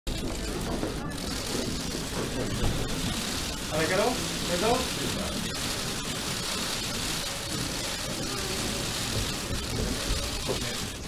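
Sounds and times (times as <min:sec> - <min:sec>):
murmur of voices: 0:00.1 - 0:11.0.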